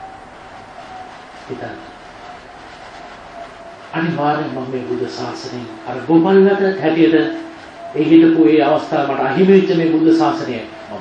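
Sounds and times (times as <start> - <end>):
faint steady hum: 0.0 - 11.0
steady hiss: 0.0 - 11.0.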